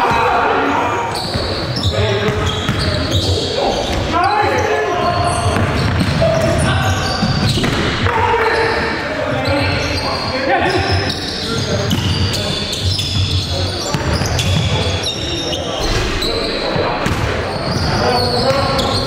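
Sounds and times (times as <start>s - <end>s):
players' voices echoing: 0.0s - 19.0s
basketball bouncing on court: 1.2s - 3.0s, 5.4s - 8.1s, 11.8s - 14.8s, 15.8s - 19.0s.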